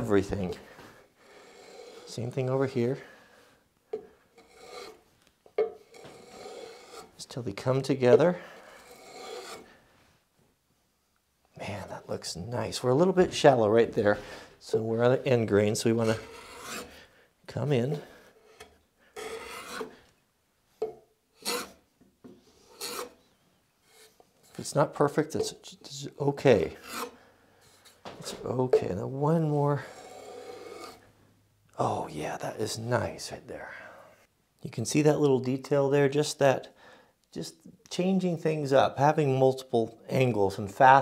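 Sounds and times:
hand plane scraping wood: 1.3 - 2.5, 4.4 - 5.0, 5.9 - 7.2, 8.6 - 9.7, 15.7 - 17.0, 17.9 - 20.0, 21.4 - 21.8, 22.6 - 23.2, 26.6 - 28.0, 29.8 - 31.0.

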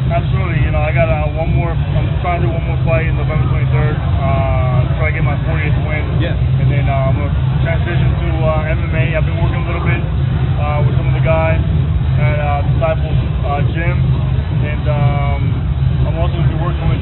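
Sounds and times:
loud steady low hum: 0.0 - 17.0.

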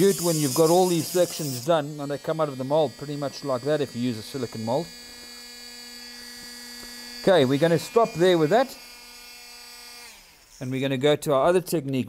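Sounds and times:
rotary tool humming: 0.0 - 10.8.

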